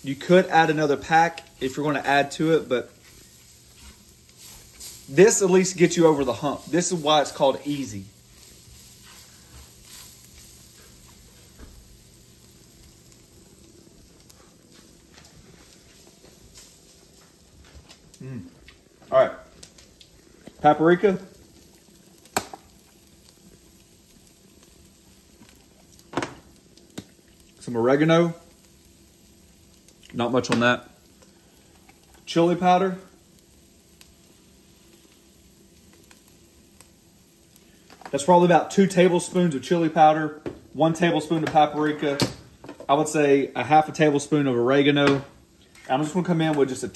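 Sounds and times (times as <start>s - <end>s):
meat frying in fat: 0.0s - 46.9s.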